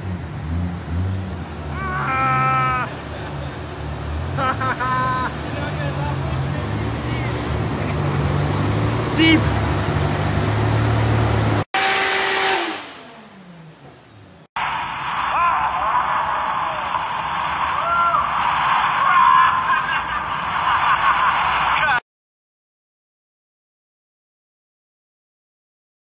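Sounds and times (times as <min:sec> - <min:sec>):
car engine revving on a dyno: 0:00.0 - 0:01.6, 0:06.1 - 0:13.8
thin noisy engine sound: 0:00.0 - 0:22.0.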